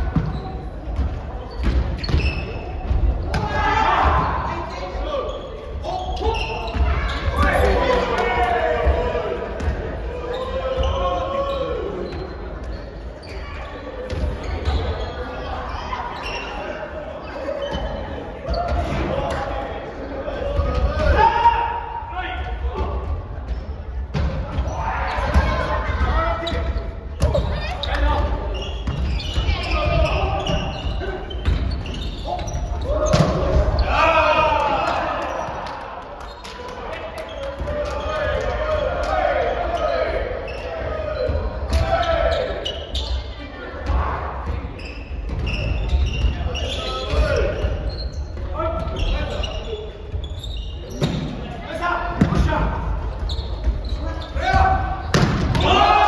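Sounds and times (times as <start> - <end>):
players calling out: 0.2 - 23.2, 24.2 - 56.0.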